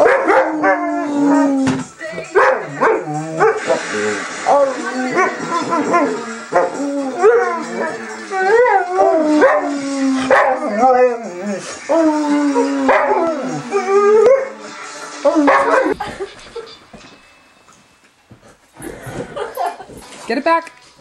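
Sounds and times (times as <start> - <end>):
dog howling: 0.0 - 1.7, 4.5 - 16.0.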